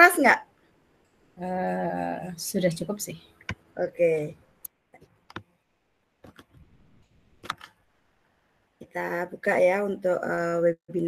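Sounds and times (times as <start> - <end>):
person speaking: 1.4 - 5.5, 8.8 - 11.0.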